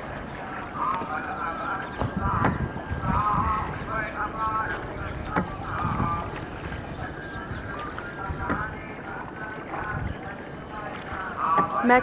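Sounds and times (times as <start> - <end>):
distant voices: 0.0 - 12.0
water washing: 0.0 - 12.0
oar knocking in rowlock: 5.3 - 6.1.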